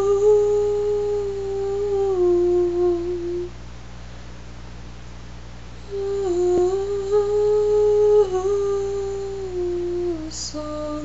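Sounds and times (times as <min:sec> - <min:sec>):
woman humming: 0:00.0 - 0:03.5, 0:05.8 - 0:11.0.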